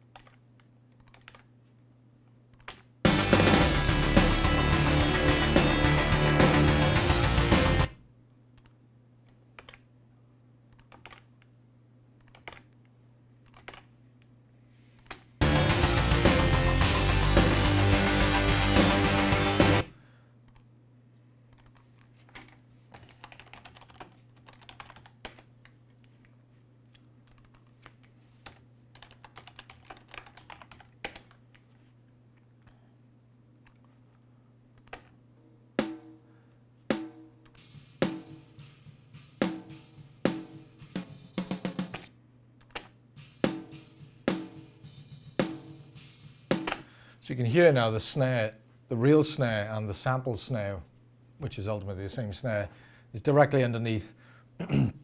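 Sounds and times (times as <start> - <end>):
rock drum recording playback: 3.1 - 8.0, 15.4 - 19.9, 35.8 - 36.2, 36.9 - 42.1, 43.2 - 47.0
snare drum hits: 35.8 - 36.2, 36.9 - 42.1, 43.2 - 46.9.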